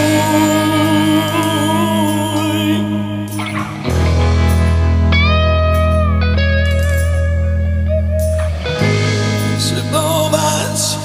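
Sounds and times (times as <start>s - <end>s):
electric guitar lead notes bending: 0.0s - 11.0s.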